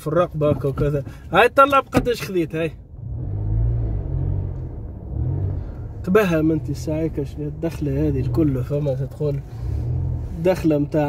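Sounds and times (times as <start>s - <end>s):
car engine hum from inside: 0.0s - 11.0s.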